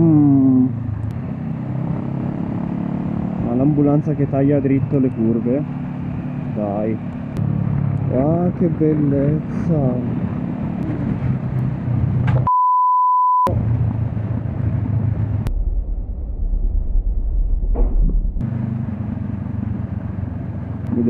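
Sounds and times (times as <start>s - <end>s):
motorcycle engine running: 0.0s - 12.0s, 18.4s - 21.0s
wind and road noise: 0.0s - 12.5s, 13.5s - 21.0s
censor bleep: 12.5s - 13.6s
muffled low rumble: 13.5s - 18.5s.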